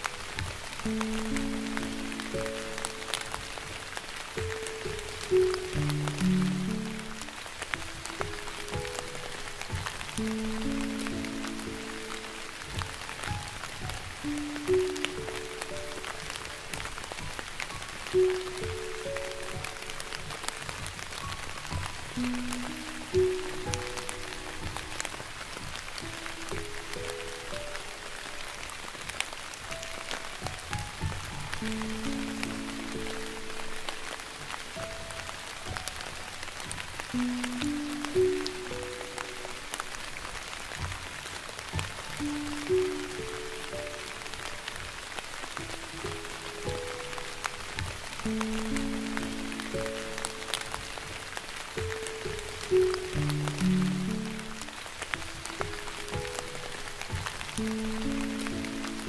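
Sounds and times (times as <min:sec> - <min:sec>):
slow piano melody: 0:00.0 - 0:59.0
steady rain: 0:00.0 - 0:59.0.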